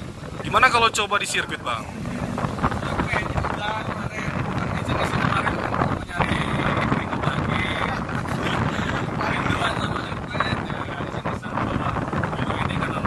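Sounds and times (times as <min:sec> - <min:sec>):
wind buffeting microphone: 0:00.0 - 0:13.0
faint voices: 0:00.4 - 0:13.0.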